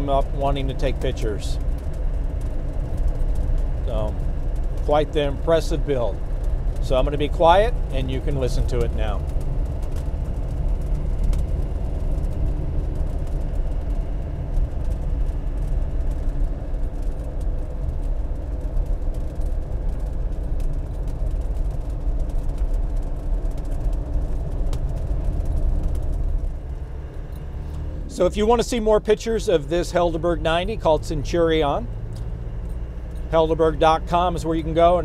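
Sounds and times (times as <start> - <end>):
diesel engine running: 0.0 - 35.0
road noise: 0.0 - 35.0.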